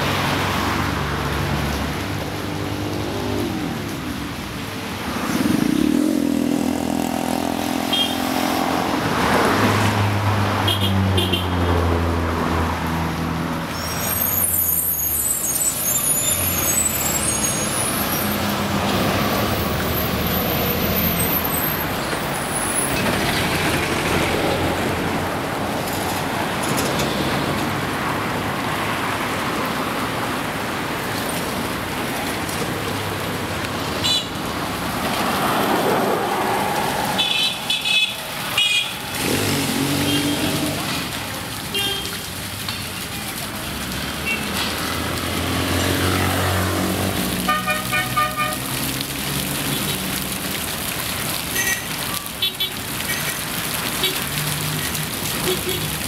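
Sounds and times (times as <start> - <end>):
traffic passing: 0.0 - 56.0
brake squeal: 13.7 - 18.6.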